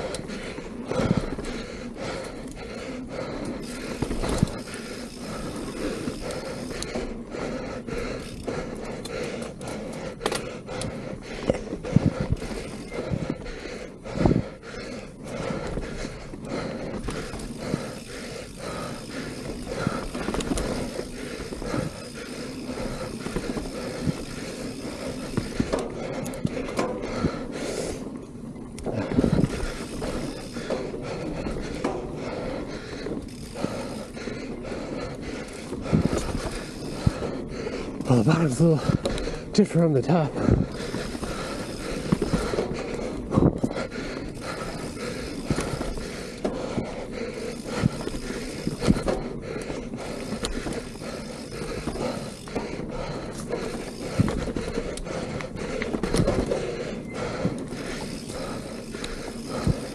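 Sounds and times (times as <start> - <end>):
bike rattling over bumps: 0.0 - 59.9
bike tyres rolling on dirt: 0.0 - 59.9.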